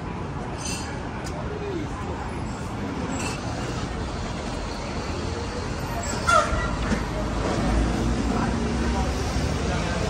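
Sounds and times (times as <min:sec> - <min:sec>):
city street traffic: 0:00.0 - 0:10.0
faint voices: 0:00.0 - 0:10.0.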